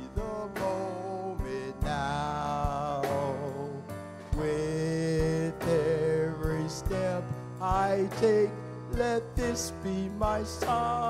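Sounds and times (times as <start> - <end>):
instrumental backing with sharp beats: 0.0 - 11.0
man singing slow song: 0.0 - 11.0.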